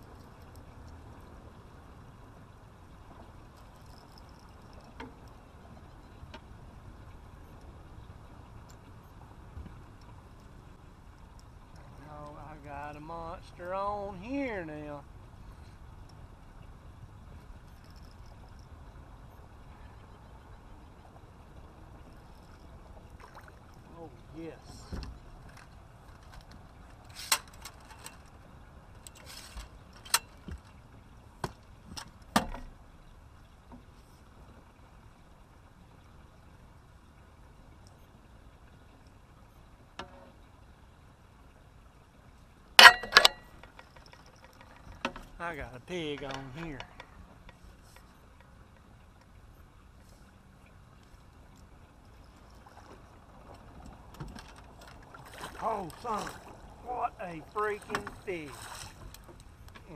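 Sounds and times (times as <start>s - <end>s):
light ticks: 8.6s - 8.9s, 37.8s - 38.1s
faint clink: 42.8s - 44.9s.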